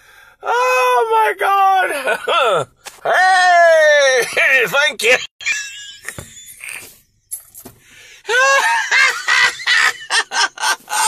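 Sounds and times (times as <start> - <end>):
man laughing in high squeals: 5.4 - 6.9, 8.3 - 11.0.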